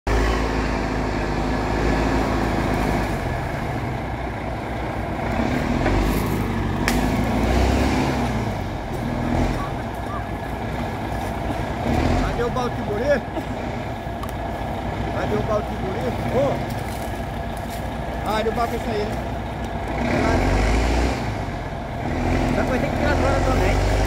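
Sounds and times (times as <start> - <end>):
diesel engine running: 0.0 - 24.0.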